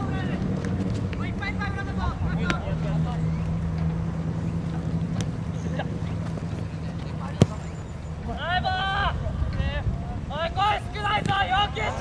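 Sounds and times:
players shouting: 5.7s - 12.0s
ball being kicked: 7.3s - 7.8s.

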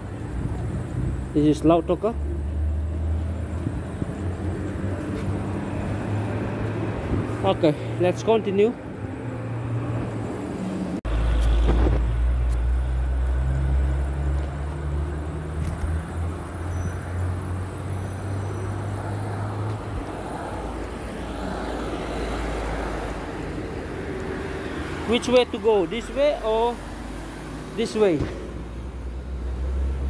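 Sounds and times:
street traffic noise: 0.0s - 30.0s
vehicle engine humming: 0.0s - 30.0s.

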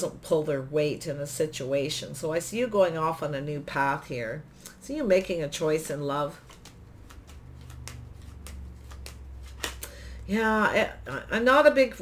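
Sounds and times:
low steady hum: 0.0s - 12.0s
cards clicking and flicking: 6.4s - 10.0s.

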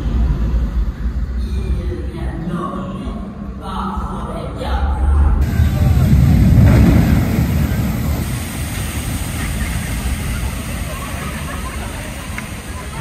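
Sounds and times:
boat splashing through water: 5.4s - 13.0s.

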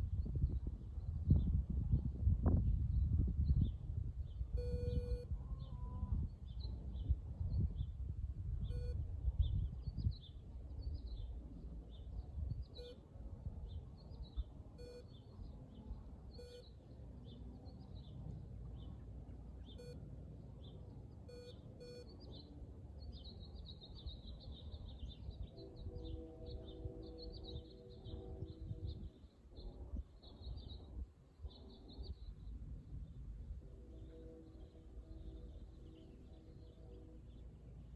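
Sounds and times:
wind rumble on microphone: 0.0s - 37.9s
short beeps: 4.6s - 5.3s, 8.7s - 9.0s, 12.8s - 13.0s, 14.8s - 15.1s, 16.3s - 16.7s, 19.8s - 20.0s, 21.2s - 22.2s.

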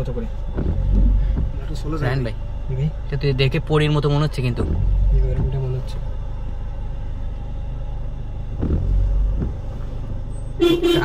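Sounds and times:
car engine and tyres rumble: 0.0s - 11.0s.

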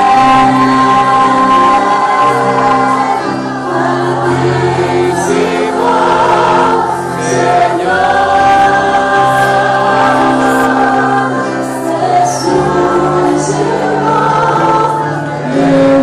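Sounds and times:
long held chords: 0.0s - 16.0s
voices singing worship music: 0.0s - 16.0s.

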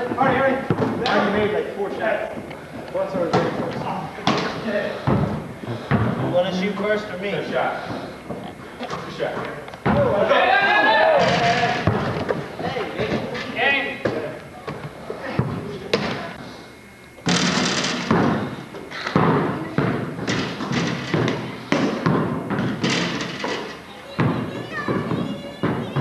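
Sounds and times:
basketball bouncing on gym floor: 3.2s - 6.2s, 11.2s - 12.4s, 17.2s - 26.0s
players shouting: 10.0s - 11.9s.

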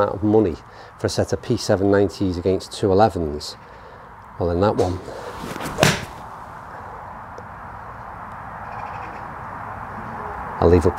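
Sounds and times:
low background noise: 0.0s - 10.9s.

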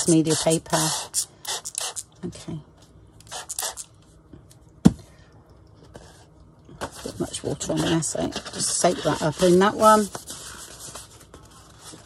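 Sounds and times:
spray bottle spritzing: 3.3s - 3.9s.

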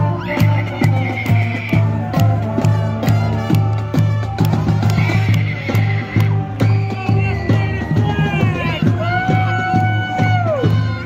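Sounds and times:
low brass notes: 0.0s - 7.4s
marching band playing: 0.0s - 11.0s.

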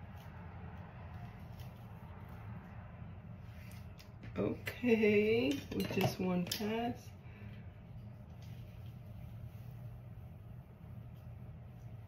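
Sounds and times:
steady low hum: 0.0s - 12.0s
brush rustling through hair: 8.0s - 12.0s.

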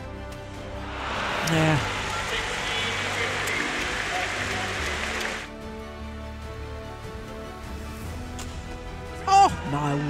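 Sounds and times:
background music: 0.0s - 10.0s
crowd cheering and applauding: 0.6s - 5.5s.

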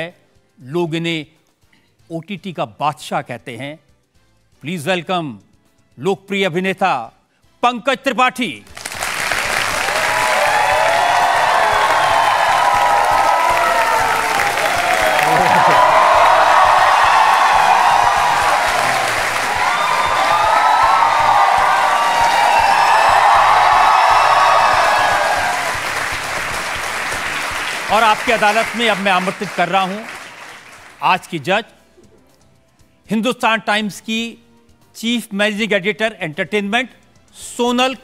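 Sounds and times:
audience applauding: 8.7s - 31.0s.

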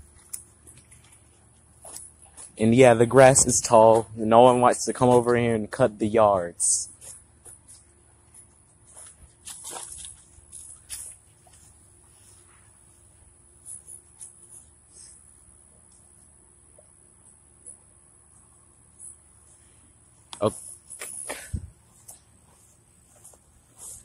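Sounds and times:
light footsteps: 21.6s - 24.0s.

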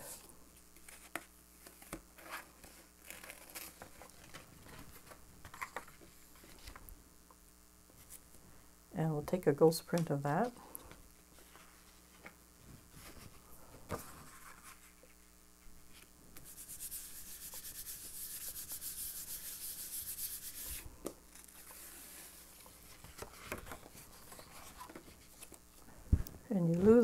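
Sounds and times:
paper rustling: 11.3s - 15.2s, 20.6s - 25.6s
hand rubbing paper: 16.0s - 25.4s.

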